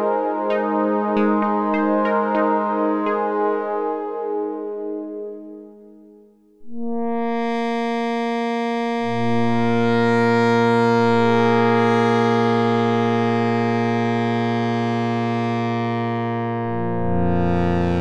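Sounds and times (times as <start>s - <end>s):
synthesizer pad chord: 0.0s - 7.8s, 9.0s - 18.0s
low synth bass note: 4.8s - 7.7s, 16.3s - 18.0s.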